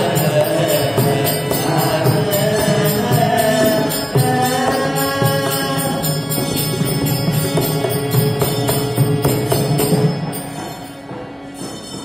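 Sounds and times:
man singing devotional song: 0:00.0 - 0:06.8
harmonium held notes: 0:00.0 - 0:12.0.

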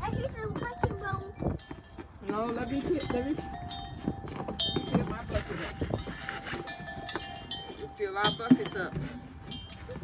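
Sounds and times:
snow scraping and crunching: 0:04.4 - 0:07.9.

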